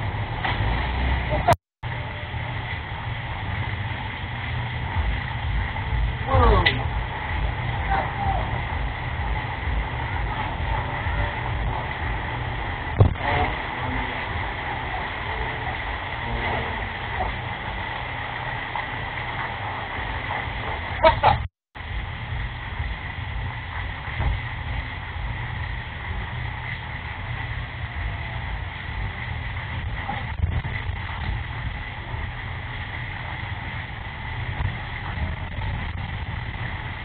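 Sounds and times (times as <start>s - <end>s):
car engine idling: 0.0s - 37.0s
faint steady whine: 0.0s - 37.0s.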